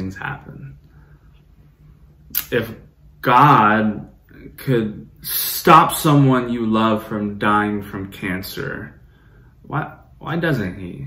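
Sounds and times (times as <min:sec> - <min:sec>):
man speaking: 0:00.0 - 0:00.8, 0:02.3 - 0:09.0, 0:09.6 - 0:11.0.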